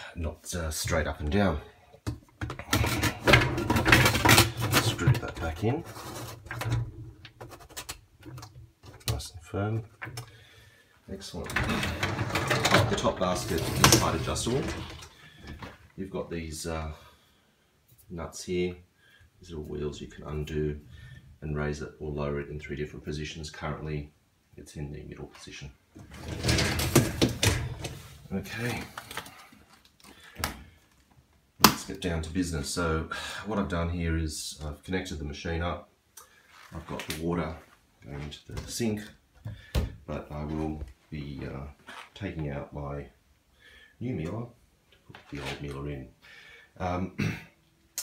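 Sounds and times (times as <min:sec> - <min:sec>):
plastic filter scraping: 0:02.5 - 0:09.2, 0:11.3 - 0:15.8, 0:26.0 - 0:29.4
wire baskets rattling and clanking: 0:02.6 - 0:05.6, 0:11.4 - 0:15.1, 0:26.0 - 0:28.1.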